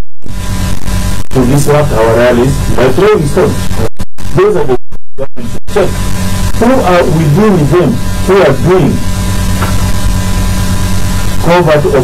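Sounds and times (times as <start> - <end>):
electrical mains hum: 0.2 - 12.0.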